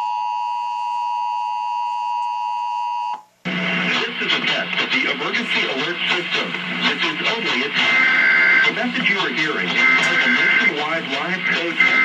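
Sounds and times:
announcer speaking: 0:03.9 - 0:07.9, 0:08.6 - 0:12.0
background music: 0:06.4 - 0:12.0.

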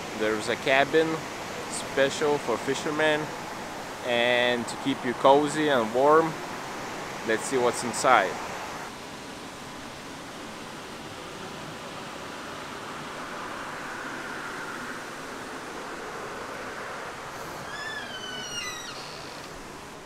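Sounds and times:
waterfall rushing: 0:00.0 - 0:20.0
high falling chirps: 0:17.4 - 0:19.6.

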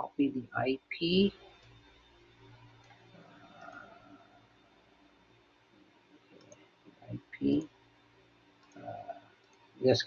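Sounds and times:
faint clicks: 0:01.5 - 0:02.0, 0:02.6 - 0:03.9, 0:06.3 - 0:06.7, 0:08.6 - 0:09.7.

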